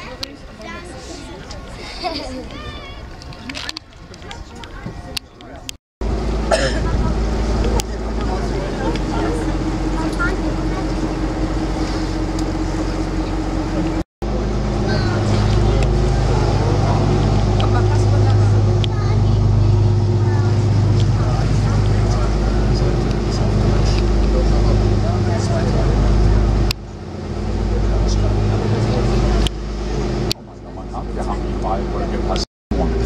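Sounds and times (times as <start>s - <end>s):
boat engine humming: 0.0s - 33.0s.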